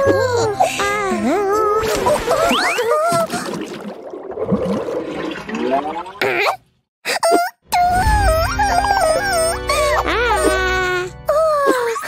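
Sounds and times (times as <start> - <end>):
cartoon water gurgling down drain: 1.8 - 6.6.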